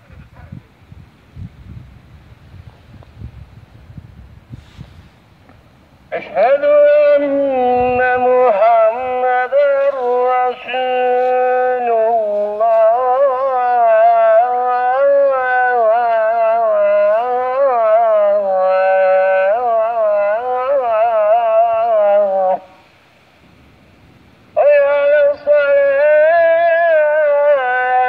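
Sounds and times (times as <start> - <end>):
man chanting call to prayer: 6.1 - 22.8, 24.6 - 28.0.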